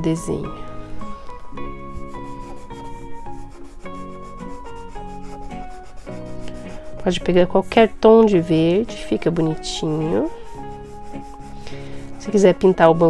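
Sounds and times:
soft background music: 0.0 - 13.0
marker scratching on paper: 1.0 - 13.0.

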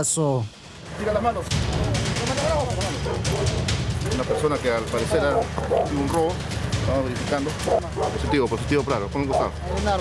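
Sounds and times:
background music: 0.0 - 10.0
muffled men's voices: 0.9 - 10.0
handheld camera rubbing and knocking: 3.0 - 6.8.

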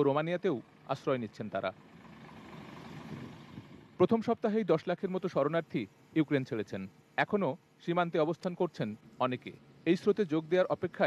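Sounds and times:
low engine and traffic noise: 0.0 - 11.0.

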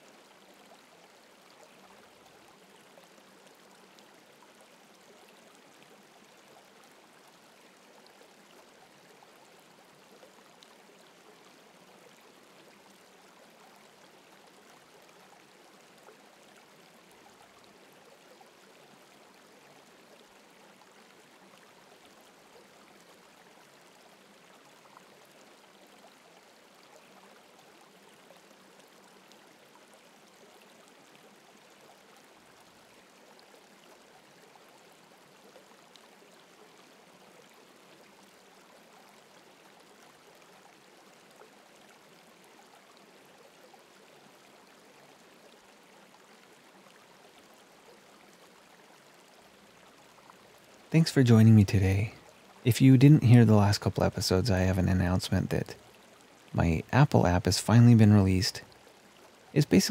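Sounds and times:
gentle running water: 0.0 - 59.9.

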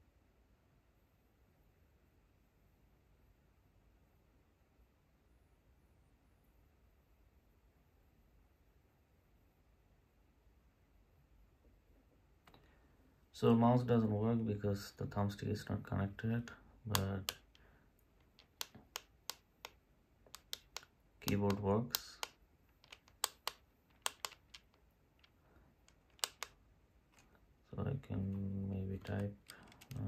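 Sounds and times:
push-button switches clicking: 18.4 - 24.7, 26.1 - 26.6.

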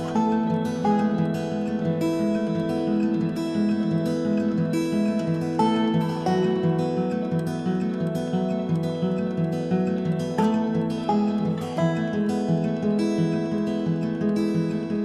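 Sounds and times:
acoustic guitar picking: 0.0 - 15.0.

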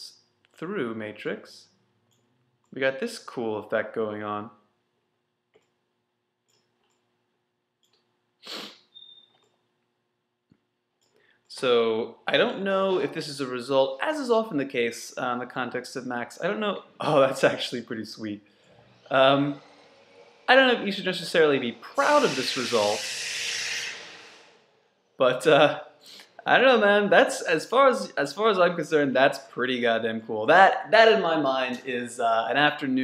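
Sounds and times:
breathy exhale hiss: 8.4 - 8.8, 18.7 - 25.0
man breathing through nose: 8.4 - 8.8, 22.3 - 24.8.

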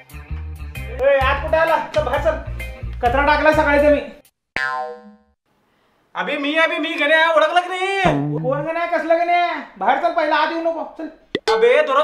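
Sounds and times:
cartoon boing twang: 4.6 - 5.2, 8.0 - 8.7.

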